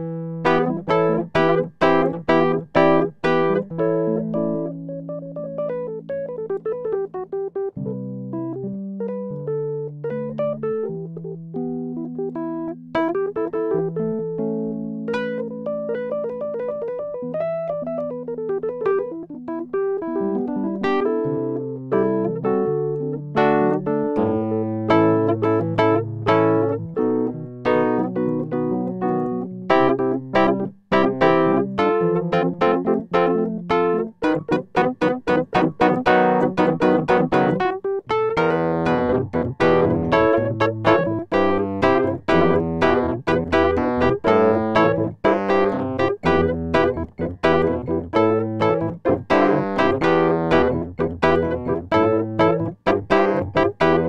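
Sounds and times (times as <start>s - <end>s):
piano keyboard music: 0.0s - 54.0s.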